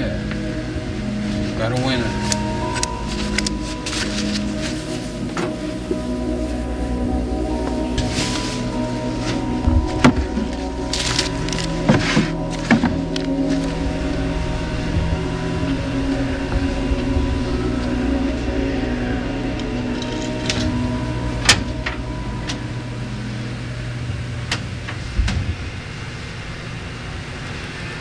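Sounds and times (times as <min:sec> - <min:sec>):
low hum of held tones: 0:00.0 - 0:28.0.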